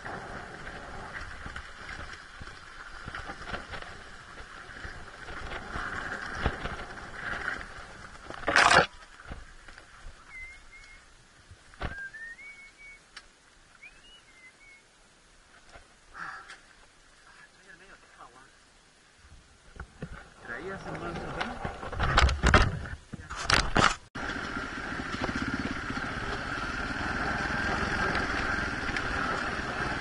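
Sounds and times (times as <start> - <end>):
tyres rustling on rough trail: 0.0 - 18.2, 19.3 - 30.0
bird chirping: 10.2 - 11.1, 11.9 - 13.1, 13.7 - 14.9.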